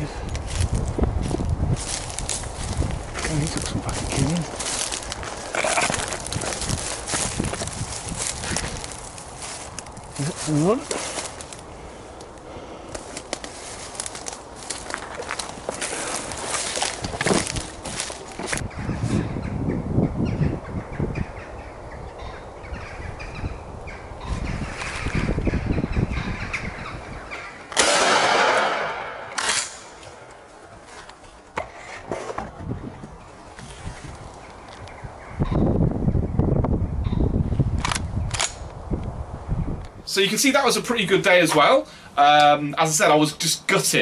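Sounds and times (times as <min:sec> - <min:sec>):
rushing noise on microphone: 0:00.0 - 0:11.6, 0:13.0 - 0:21.2, 0:24.2 - 0:27.1, 0:31.7 - 0:40.0
footsteps crunching through dry leaves: 0:00.2 - 0:11.7, 0:13.0 - 0:18.7, 0:33.4 - 0:34.9.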